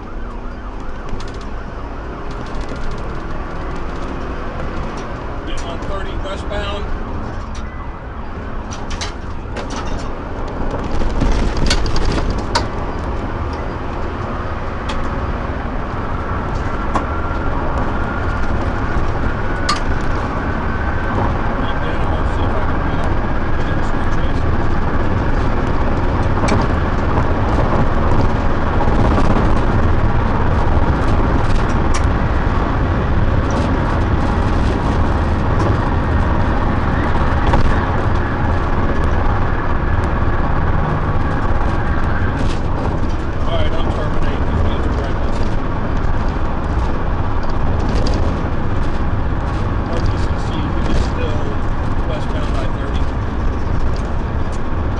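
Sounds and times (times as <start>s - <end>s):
car road and engine noise: 0.0s - 54.9s.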